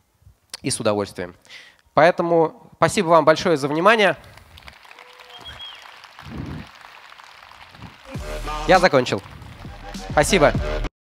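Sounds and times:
audience applauding: 4.2 - 10.4.

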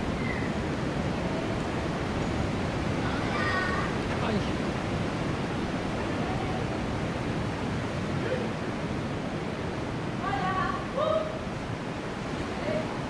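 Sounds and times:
ocean surf breaking: 0.0 - 13.0.

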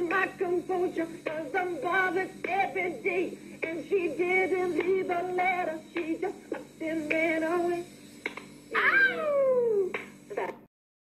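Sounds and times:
high vocal cry sliding down: 8.7 - 9.9.

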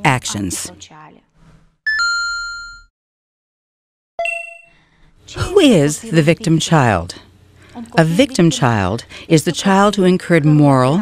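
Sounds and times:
bright chime ringing: 1.9 - 2.9, 4.2 - 4.8.

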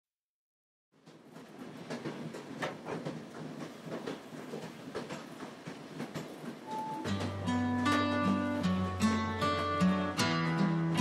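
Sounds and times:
train rumbling on rails: 1.0 - 9.8
wheels clacking over rail joints: 1.0 - 11.0.

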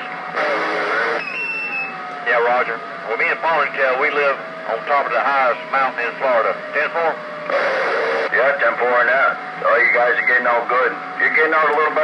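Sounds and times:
radio static hiss: 0.0 - 1.2, 2.3 - 12.0
steady higher whistle: 1.2 - 2.0
whistling tone sliding down: 1.2 - 2.0.

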